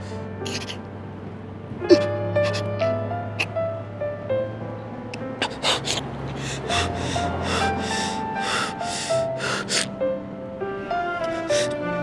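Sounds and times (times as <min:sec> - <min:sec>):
slow background music: 0:00.0 - 0:12.0
man breathing hard: 0:05.4 - 0:10.0.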